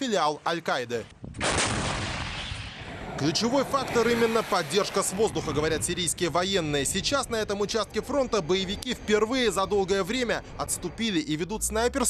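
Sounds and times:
heavy gunfire blast with rumble: 1.3 - 3.2.

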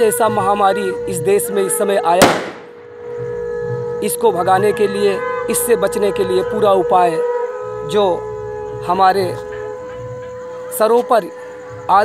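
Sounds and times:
conch shell blown: 0.0 - 11.9
firecracker bang: 2.2 - 2.9.

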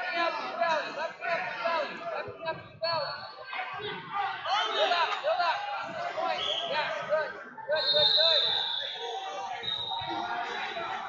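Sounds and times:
indistinct voices echoing: 0.0 - 11.0.

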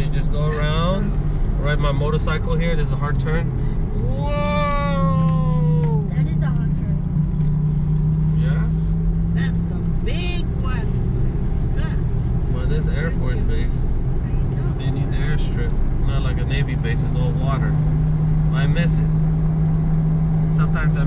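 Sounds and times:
car engine and tyres drone: 0.0 - 21.0.

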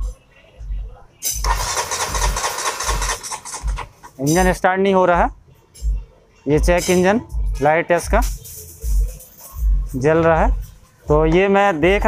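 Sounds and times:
engine cranking without starting: 1.3 - 4.5.

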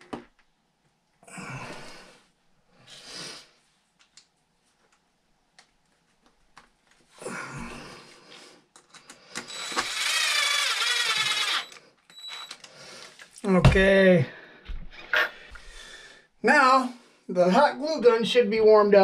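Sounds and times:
cordless drill motor whining: 9.4 - 12.7.

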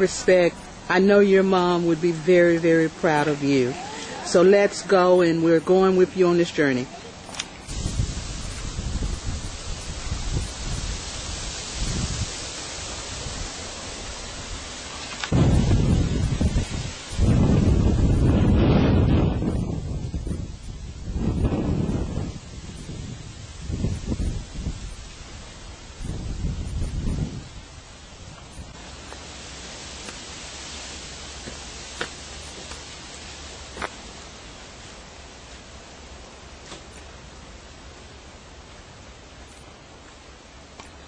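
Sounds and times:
wind buffeting microphone: 7.6 - 28.8.

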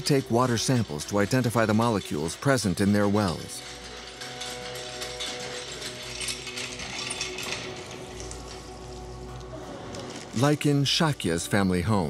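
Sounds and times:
hand pump clanking and creaking: 0.0 - 11.1.

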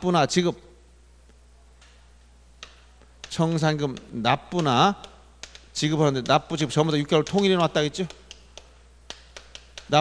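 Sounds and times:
steady low hum: 0.0 - 10.0
chalk tap: 2.6 - 10.0.

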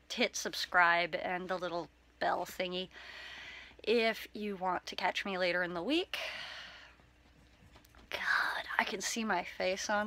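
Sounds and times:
woman speaking: 0.0 - 3.0, 3.8 - 6.4, 8.1 - 10.0
woman drawing breath: 3.0 - 3.8.

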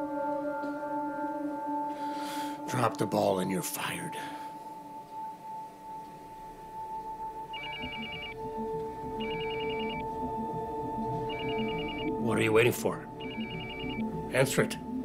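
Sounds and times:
smartphone electronic ringtone: 7.5 - 10.4, 11.0 - 14.2.

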